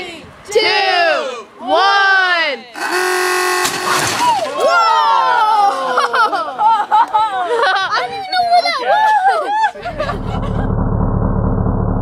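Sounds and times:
people whooping: 0:02.8 - 0:06.2.

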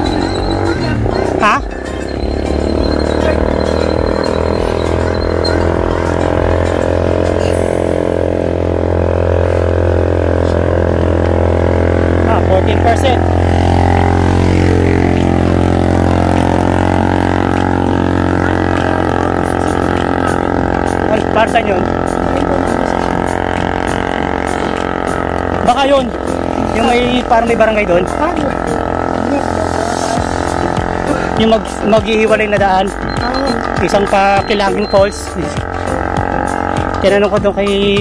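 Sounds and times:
motorcycle engine cruising: 0:00.0 - 0:38.0.

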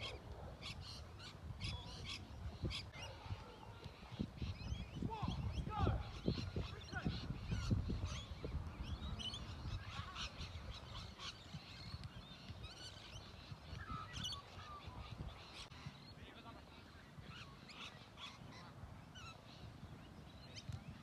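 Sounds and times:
bird calls and chirps: 0:00.0 - 0:21.0.

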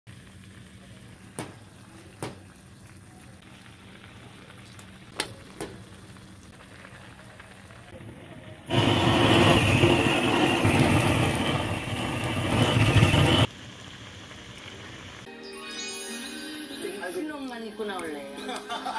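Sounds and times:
blowtorch flame roaring hiss: 0:03.4 - 0:15.3.

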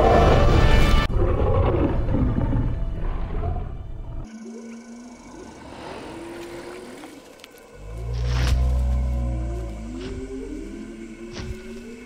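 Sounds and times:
deep dinosaur roar: 0:07.8 - 0:12.0.

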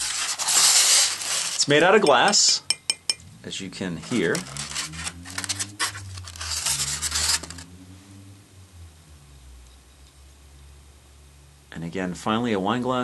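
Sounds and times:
glass scraping foam packaging: 0:00.0 - 0:02.7, 0:03.9 - 0:07.7.

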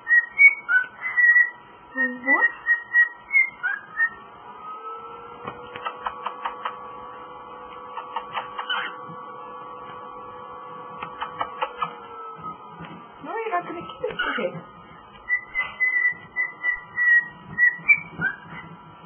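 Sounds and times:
cockatiel chirping: 0:00.0 - 0:01.6, 0:02.4 - 0:04.2, 0:07.9 - 0:09.0, 0:11.1 - 0:11.9, 0:15.3 - 0:18.6
steady hum: 0:00.0 - 0:19.0.

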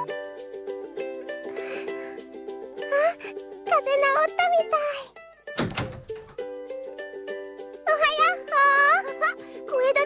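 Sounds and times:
light children's music: 0:00.0 - 0:10.0
dull thump: 0:05.6 - 0:06.4
high-pitched character voice: 0:07.9 - 0:10.0.

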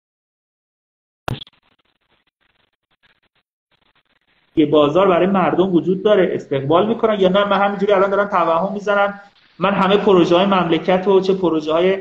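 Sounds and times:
scratchy crackle on microphone: 0:01.3 - 0:04.7.

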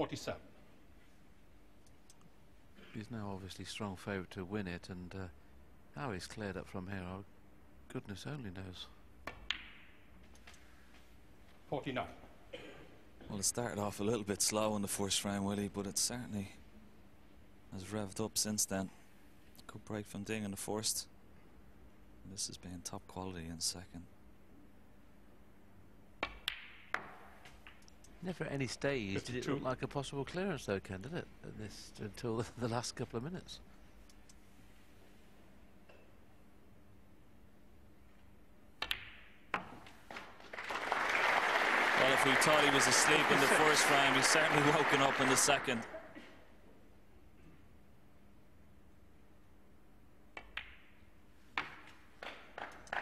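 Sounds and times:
snooker balls clicking: 0:09.2 - 0:10.6, 0:26.2 - 0:28.2, 0:38.8 - 0:40.5, 0:50.3 - 0:53.0
cue tip tapping ball: 0:26.2 - 0:27.8, 0:38.8 - 0:39.9, 0:50.4 - 0:51.0.

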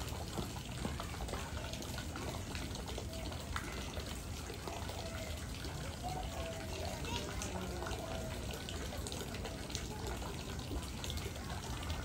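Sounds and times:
faint voices: 0:00.0 - 0:12.0
water running and trickling: 0:00.0 - 0:12.0.

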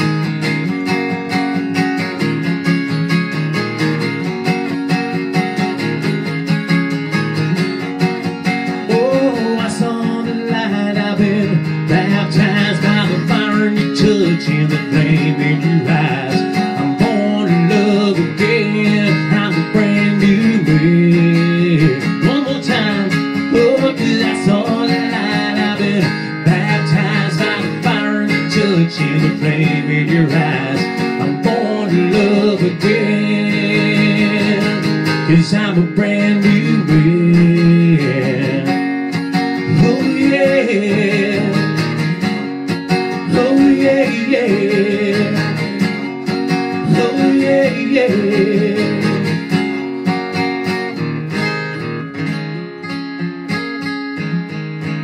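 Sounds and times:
acoustic guitar strummed: 0:00.0 - 0:55.0
man singing: 0:08.8 - 0:38.9, 0:39.6 - 0:42.1, 0:43.2 - 0:49.6.

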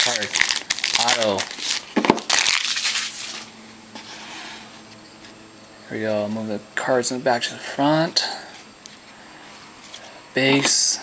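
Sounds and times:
foil wrapper crinkling: 0:00.0 - 0:03.5
cards being handled: 0:00.0 - 0:05.4.

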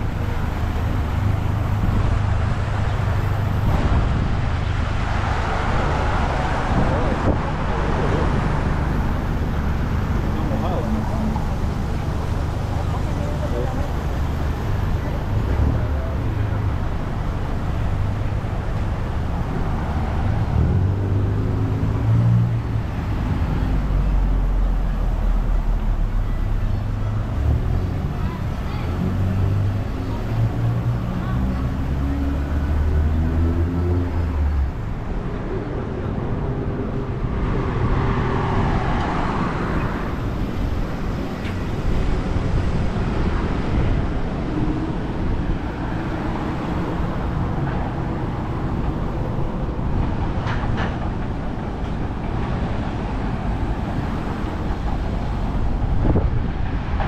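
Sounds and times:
vehicle engines running: 0:00.0 - 0:57.0
vehicle passing with tyre noise: 0:00.0 - 0:57.0.

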